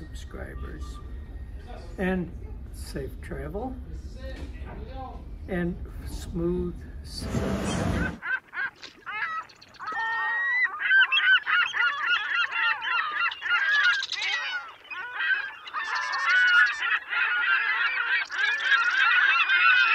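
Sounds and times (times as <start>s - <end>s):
geese honking: 7.2s - 19.9s.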